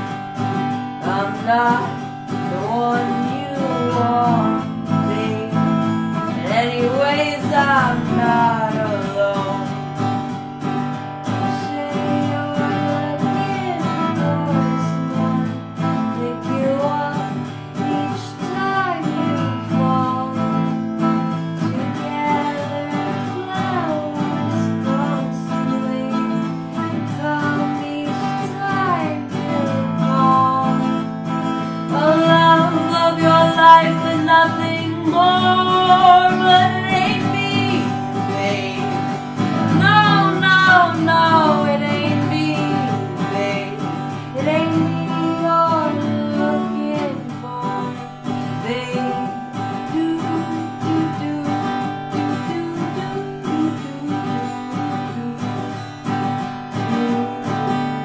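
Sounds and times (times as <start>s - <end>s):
person singing: 0.0s - 10.4s, 11.2s - 58.0s
acoustic guitar strumming: 0.0s - 58.0s.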